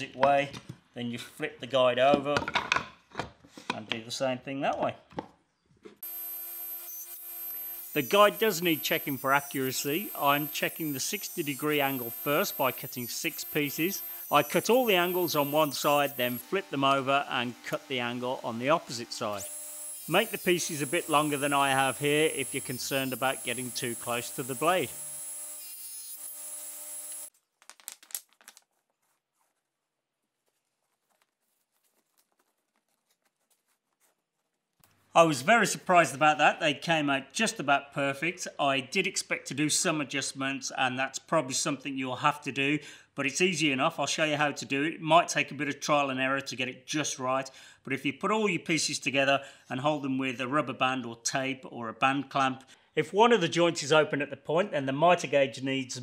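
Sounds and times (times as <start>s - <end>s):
table saw running: 6.0s - 27.3s.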